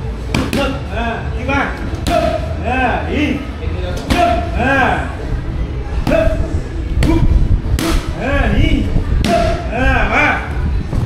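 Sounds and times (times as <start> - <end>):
strikes slapping on pads: 0.3 - 0.8.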